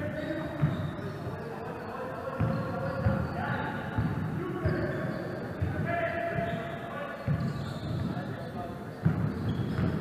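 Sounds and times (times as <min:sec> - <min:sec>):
basketball bouncing on wooden floor: 0:09.0 - 0:10.0.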